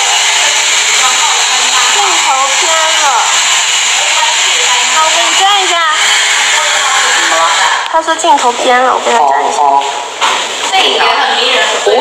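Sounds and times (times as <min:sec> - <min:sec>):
hair dryer running: 0:00.0 - 0:08.2.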